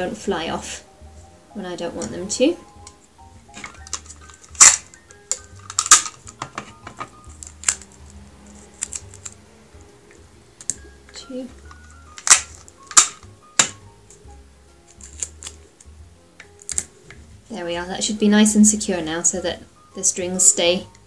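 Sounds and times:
sticky tape ripping from dispenser: 3.6 - 6.4, 7.4 - 9.4, 12.1 - 13.8, 14.8 - 15.9
tape dispenser clicks: 3.6 - 6.5, 11.7 - 13.8.

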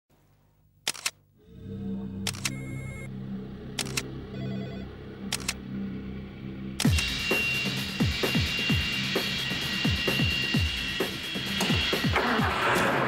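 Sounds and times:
camera shutter double clicks: 0.9 - 1.2
low electronic music: 1.4 - 12.8.

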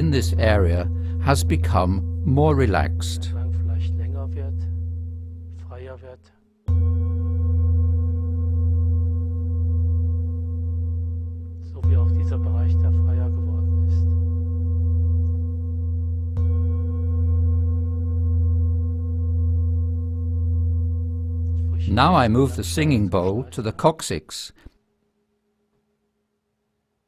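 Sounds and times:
felt mallet striking bowl: 0.0 - 5.8, 6.7 - 23.5
singing bowl ringing: 0.0 - 5.8, 6.5 - 23.6.

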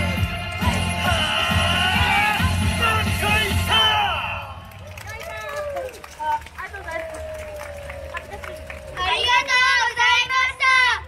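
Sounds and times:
crowd calling out and chattering: 0.0 - 11.0.

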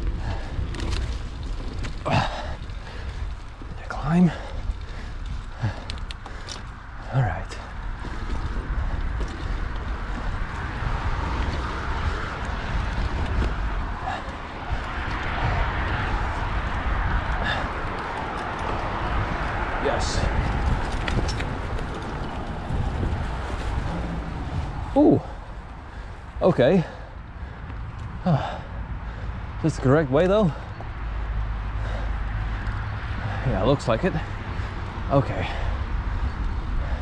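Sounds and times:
bike clicks and rattles: 0.0 - 37.0
bike tyres rolling on dirt: 0.0 - 37.0
wind rumble on microphone: 0.0 - 37.0.

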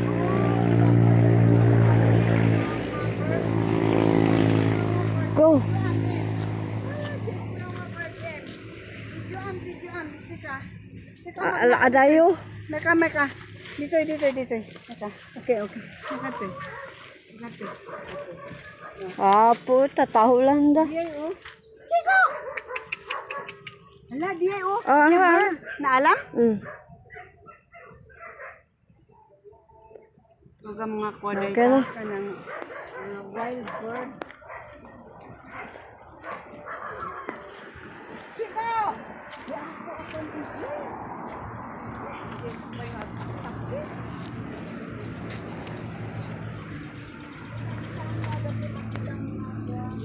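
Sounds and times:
low engine drone: 0.0 - 17.5
faint voices: 29.0 - 50.0.

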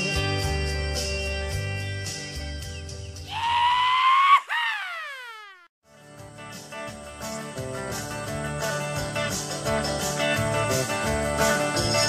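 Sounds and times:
band music: 0.0 - 3.4, 6.0 - 12.0
person hollering yee-haw: 3.3 - 5.7.

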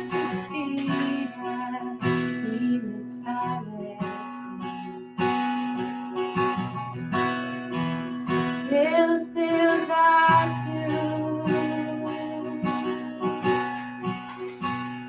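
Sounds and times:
woman singing: 0.0 - 4.9, 8.6 - 14.0
acoustic guitar strumming: 0.0 - 15.0.

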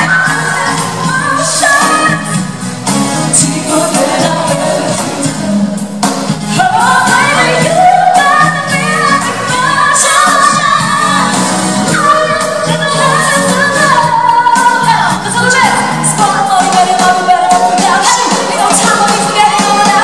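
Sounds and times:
two women singing: 0.0 - 2.5, 3.2 - 20.0
band with keyboards and guitar: 0.0 - 20.0.

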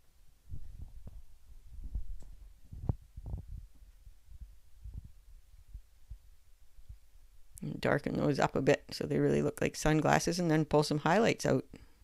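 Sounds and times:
low thumps and bumps: 0.5 - 7.1.

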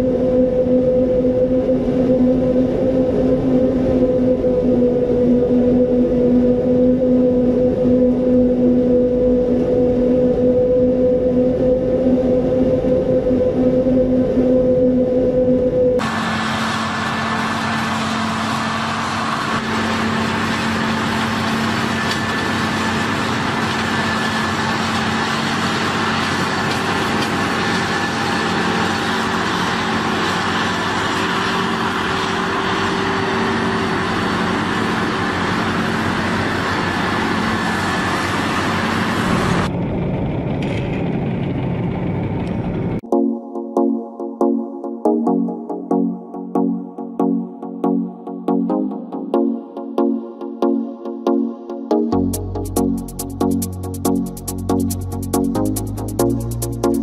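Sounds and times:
engine hum: 0.0 - 43.0
harvester engine under load: 16.0 - 39.7.

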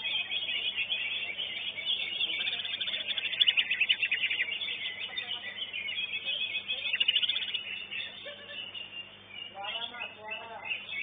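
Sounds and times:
bird chattering and trilling: 0.0 - 11.0.

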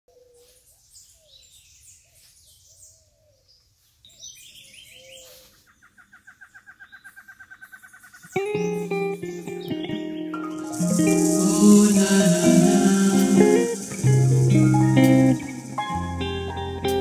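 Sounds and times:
low curving bird calls: 0.1 - 17.0
high bird chirps: 4.1 - 17.0
fast repeated bird call: 10.5 - 17.0.

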